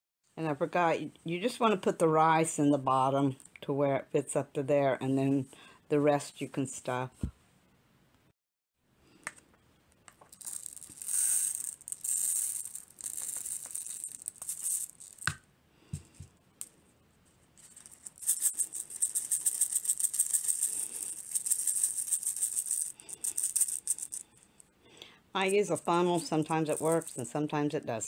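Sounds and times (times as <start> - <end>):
rice grains pouring into funnel: 10.3 - 15.2
rice rattling in funnel: 10.3 - 15.2, 17.8 - 24.2.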